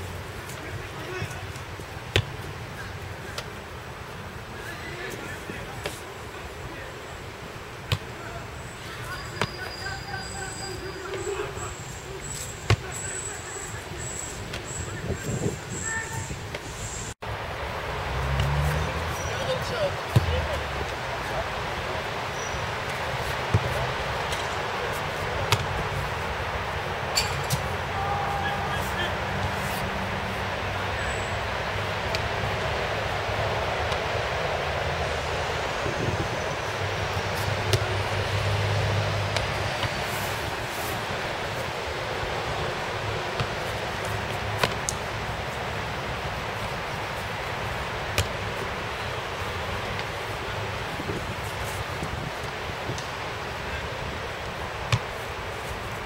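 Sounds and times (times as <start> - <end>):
background hiss: 0.0 - 56.0
football being struck and caught: 2.1 - 2.4, 25.5 - 25.8, 37.7 - 37.9, 43.4 - 43.6, 48.1 - 48.4.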